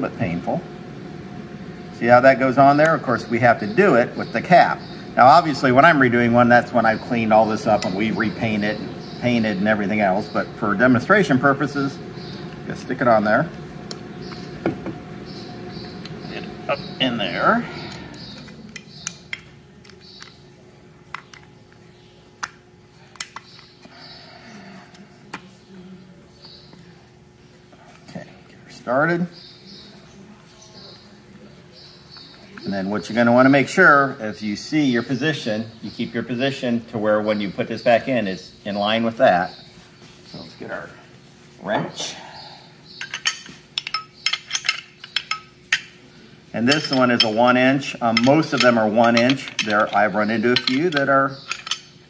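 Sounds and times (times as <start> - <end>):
small metal clicks and clinks: 43.0 - 45.9, 48.2 - 51.9.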